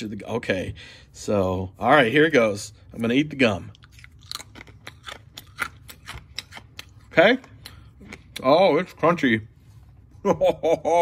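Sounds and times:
hard gum crunching: 0:03.6 - 0:08.6.

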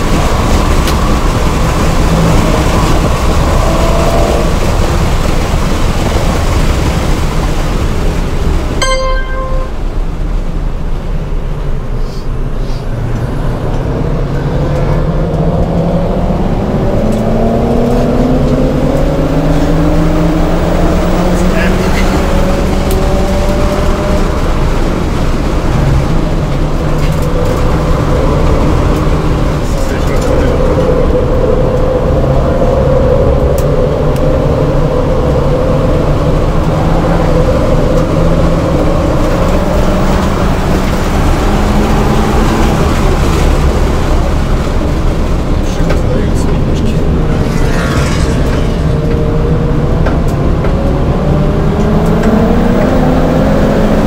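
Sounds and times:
car engine under hard driving: 0:00.0 - 0:54.0.

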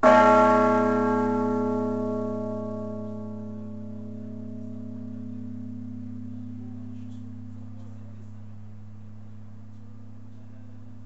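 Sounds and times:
large church bell ringing: 0:00.0 - 0:11.0.

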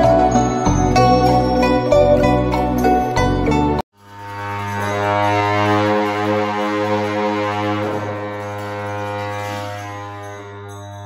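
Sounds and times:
long horns droning: 0:04.0 - 0:11.0.

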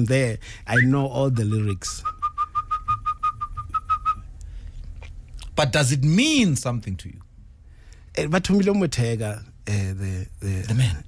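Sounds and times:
high whistle-like pips: 0:01.8 - 0:04.3.

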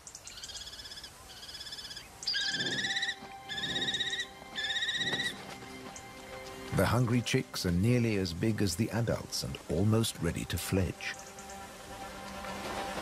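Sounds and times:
kestrels trilling calls: 0:00.1 - 0:06.2.

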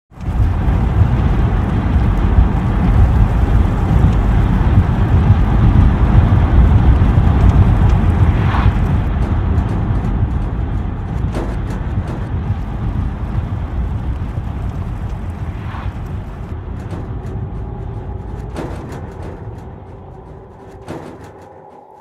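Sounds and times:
car engine and road rumble: 0:00.1 - 0:22.0
wind buffeting microphone: 0:00.1 - 0:22.0.

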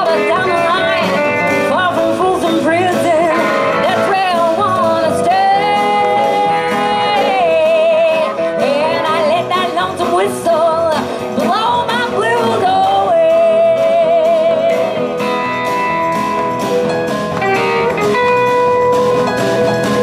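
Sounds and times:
strummed acoustic guitar: 0:00.0 - 0:20.0.

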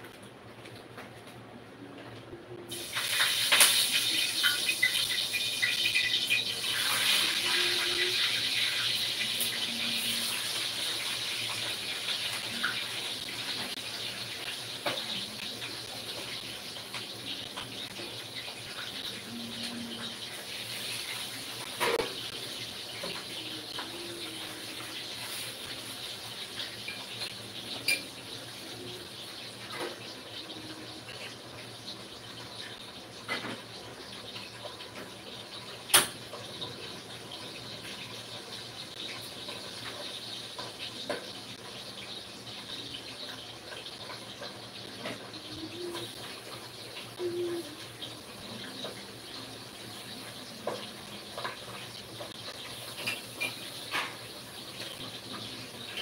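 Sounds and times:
water running: 0:02.6 - 0:56.0.

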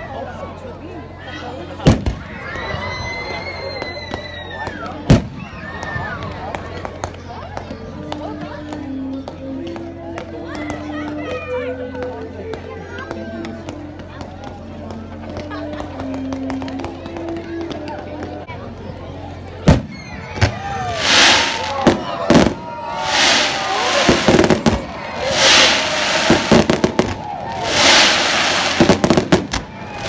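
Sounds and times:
crowd voices: 0:00.0 - 0:30.0
firework pops: 0:01.9 - 0:02.3, 0:19.7 - 0:29.8
firework boom: 0:19.7 - 0:29.8.

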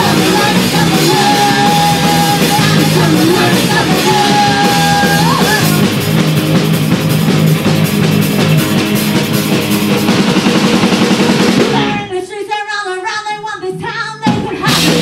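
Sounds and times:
woman singing: 0:00.0 - 0:05.8, 0:11.7 - 0:15.0
punk rock band playing: 0:00.0 - 0:12.3, 0:14.2 - 0:15.0.

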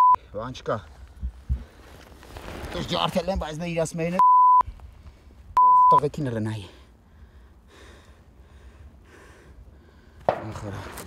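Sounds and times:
censor bleeps: 0:00.0 - 0:00.2, 0:04.2 - 0:04.6, 0:05.6 - 0:06.0.

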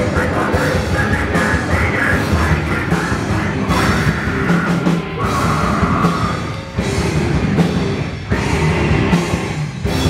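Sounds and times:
bass guitar: 0:00.0 - 0:10.0
distorted electric guitar: 0:00.0 - 0:10.0
pounding drums: 0:00.0 - 0:10.0.

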